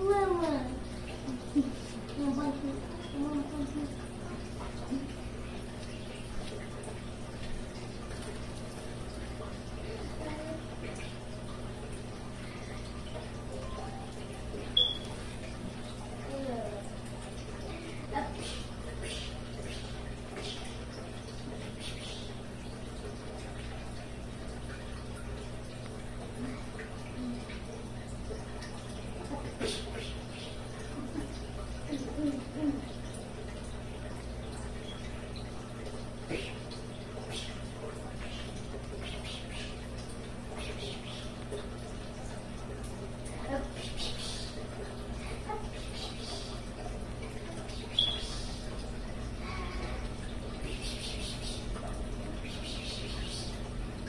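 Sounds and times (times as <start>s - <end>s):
low hum and hiss: 0.0s - 54.0s.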